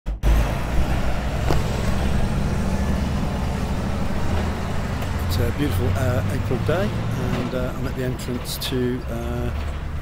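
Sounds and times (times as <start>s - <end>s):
road traffic rumble: 0.1s - 10.0s
vehicle engine running: 0.1s - 10.0s.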